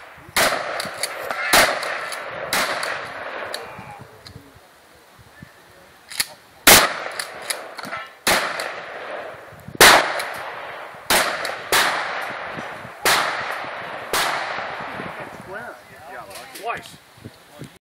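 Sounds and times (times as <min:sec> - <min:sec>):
gunshots with long echo: 0:00.0 - 0:03.7, 0:06.6 - 0:15.4.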